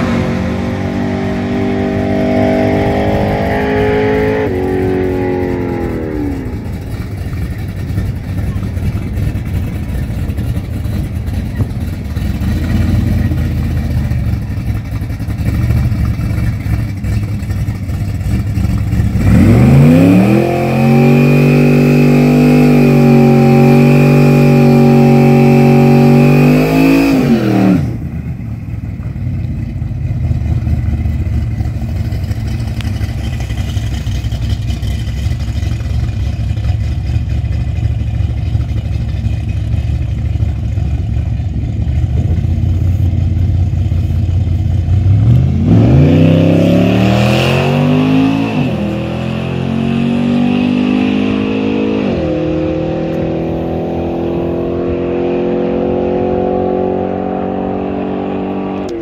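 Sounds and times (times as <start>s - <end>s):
car engine revving: 0.0s - 59.0s
engine low rumble: 0.0s - 59.0s.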